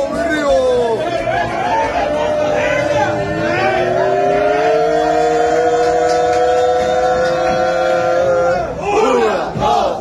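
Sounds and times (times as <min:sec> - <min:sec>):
fans yelling together: 0:00.0 - 0:10.0.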